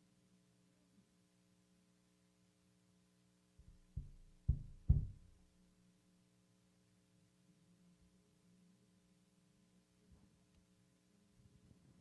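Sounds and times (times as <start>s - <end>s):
thumps on wooden pulpit: 3.6s - 5.3s.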